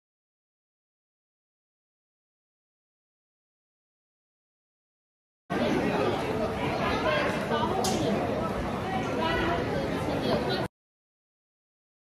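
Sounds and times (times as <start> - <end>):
people chattering indoors: 5.5 - 10.7.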